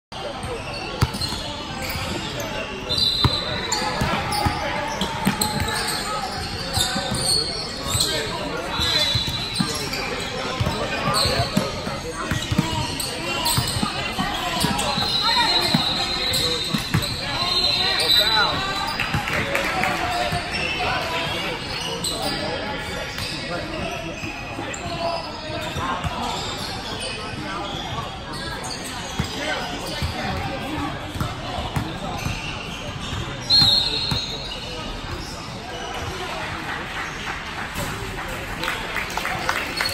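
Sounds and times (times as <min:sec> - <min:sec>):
sneakers squeaking: 0:00.2 - 0:36.2, 0:39.2 - 0:39.9.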